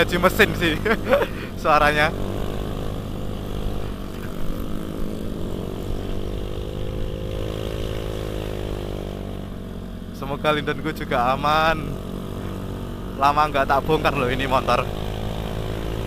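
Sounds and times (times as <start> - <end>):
scooter engine cruising: 0.0 - 16.0.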